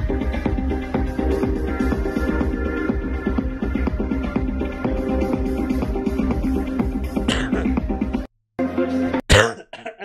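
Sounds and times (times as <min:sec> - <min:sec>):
electronic dance music: 0:00.0 - 0:09.2
man coughing: 0:07.2 - 0:07.8, 0:09.3 - 0:10.0.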